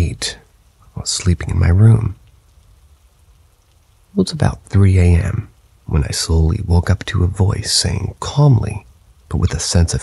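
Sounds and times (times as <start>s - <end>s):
person speaking: 0.0s - 2.2s, 4.1s - 10.0s
faint steady hiss: 0.0s - 10.0s.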